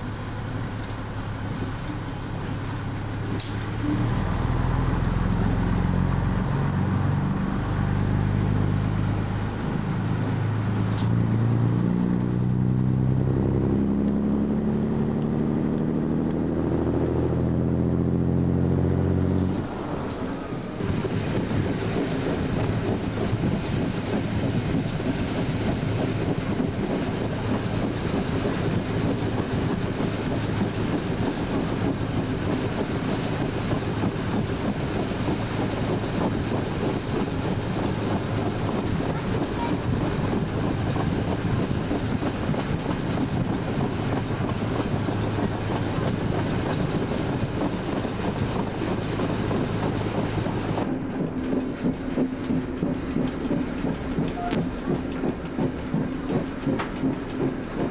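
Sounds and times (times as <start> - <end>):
railcar running noise: 0.0 - 14.9, 15.6 - 57.9
diesel railcar engine pulling: 0.0 - 57.9
wind on microphone: 20.8 - 55.4.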